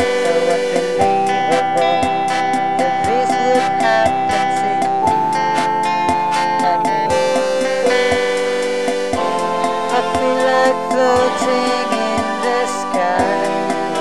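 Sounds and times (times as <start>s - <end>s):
steady drum beat: 0.0s - 14.0s
strummed guitars: 0.0s - 14.0s.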